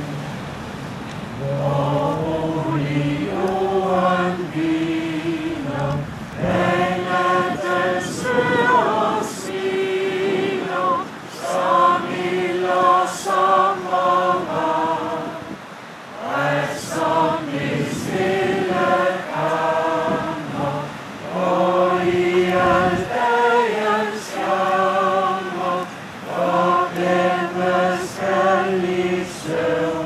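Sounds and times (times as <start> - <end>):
congregation singing a hymn: 1.3 - 30.0.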